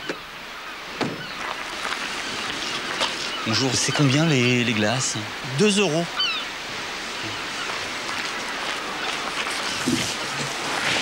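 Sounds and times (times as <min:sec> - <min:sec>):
seaside ambience hiss: 0:00.0 - 0:11.0.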